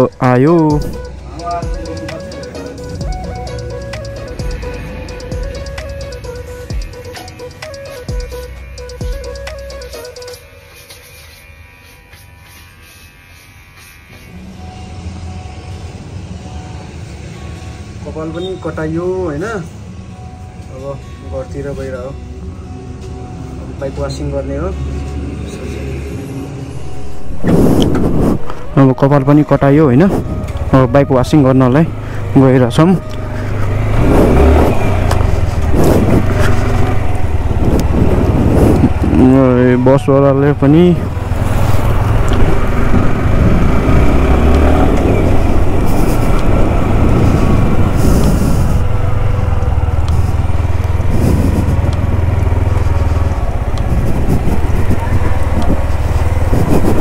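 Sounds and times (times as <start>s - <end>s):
wind and road noise: 0.0s - 10.0s, 15.1s - 57.0s
motorcycle engine: 0.0s - 10.2s, 11.2s - 57.0s
loud wavering pitched sound: 0.0s - 20.2s, 21.0s - 57.0s.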